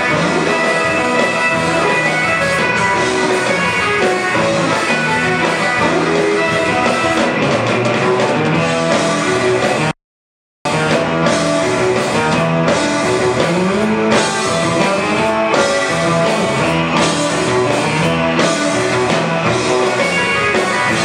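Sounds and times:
drum kit beat: 0.0s - 9.9s, 10.7s - 21.0s
electric guitar lead: 0.0s - 9.9s, 10.7s - 21.0s
bass guitar: 0.0s - 10.0s, 10.6s - 21.0s.

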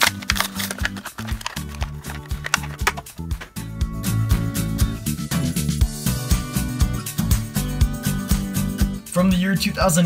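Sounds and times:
plastic blister pack tearing: 0.0s - 3.1s
upbeat background music: 0.0s - 10.0s.

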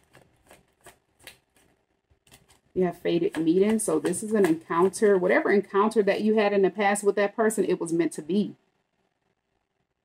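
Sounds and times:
cards being shuffled: 0.0s - 5.1s.

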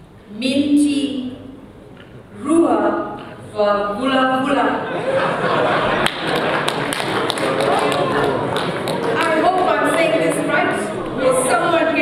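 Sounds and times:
hand claps: 6.0s - 9.8s
voices: 7.4s - 12.0s.

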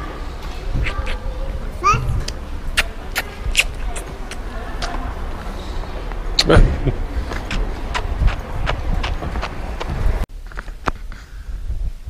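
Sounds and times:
footsteps on pavement: 7.2s - 11.0s.

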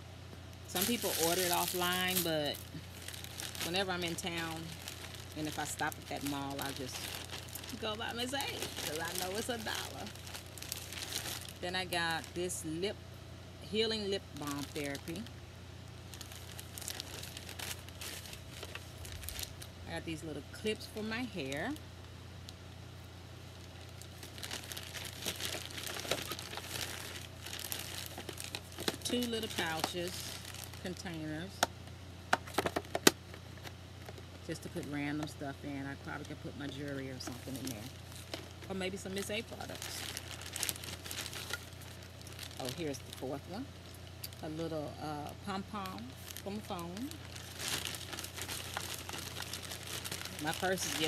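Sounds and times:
steady low hum: 0.0s - 51.0s
plastic bag crinkling: 0.6s - 12.9s, 14.0s - 15.3s, 15.9s - 21.8s, 23.5s - 31.6s, 36.1s - 44.5s, 45.4s - 51.0s.

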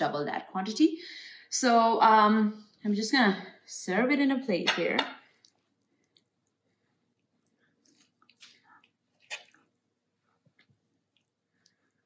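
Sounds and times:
wet scooping of food: 5.3s - 12.0s.

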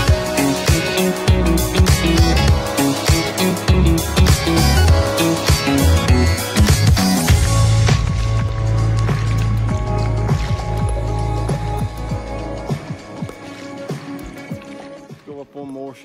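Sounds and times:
heavy bass line: 0.0s - 12.9s
music with sustained chords: 0.0s - 15.3s.

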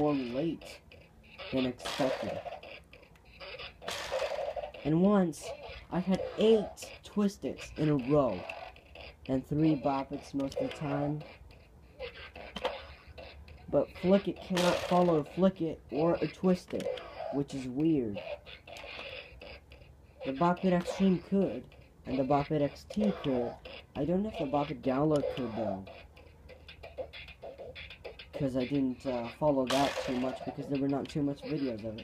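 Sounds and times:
toy speaker sounds: 0.0s - 32.0s.

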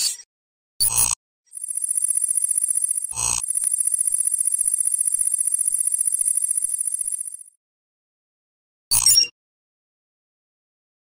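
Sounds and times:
high pulsing ringing tone: 1.5s - 7.6s.

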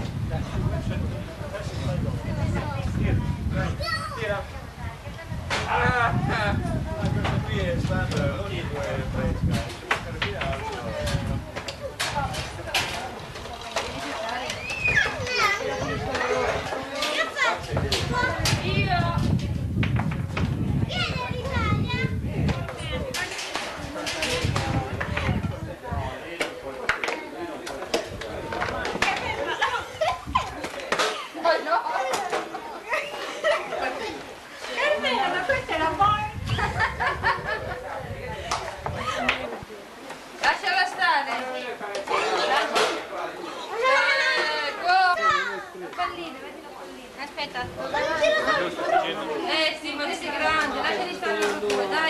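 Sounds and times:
general chatter: 0.0s - 52.0s
children talking and calling out: 2.0s - 7.5s, 10.4s - 52.0s
people chuckling: 29.2s - 35.6s, 36.4s - 38.4s.

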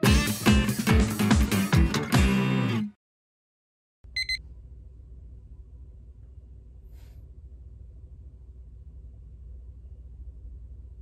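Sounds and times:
low steady room hum: 4.1s - 11.0s.

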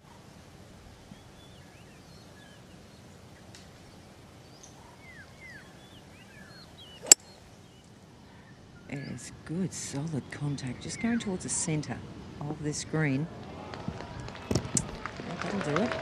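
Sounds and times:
golf club striking ball: 7.0s - 7.4s.

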